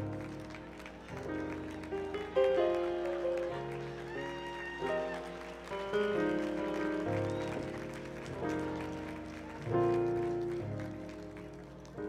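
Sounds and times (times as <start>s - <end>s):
grand piano slow chords: 0.0s - 12.0s.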